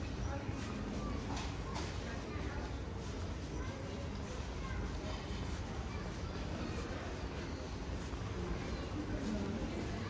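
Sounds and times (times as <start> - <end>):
indistinct chatter of passers-by: 0.0 - 10.0.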